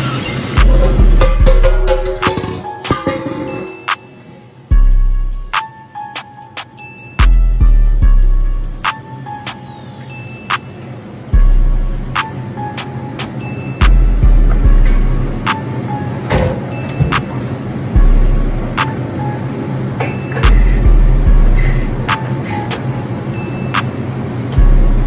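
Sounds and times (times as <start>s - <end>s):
deep booming bass hits: 0.6s - 2.2s
low bass hum: 0.6s - 2.2s, 13.9s - 15.5s, 18.0s - 18.8s, 20.5s - 22.1s, 24.6s - 25.0s
crisp ticking hi-hats: 4.7s - 10.7s, 11.3s - 15.6s, 18.0s - 18.9s, 20.4s - 23.9s, 24.6s - 25.0s.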